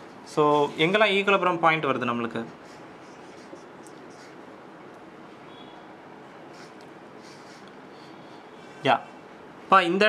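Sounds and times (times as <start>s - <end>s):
marker pen scratching on whiteboard: 2.5s - 4.5s, 6.5s - 7.8s.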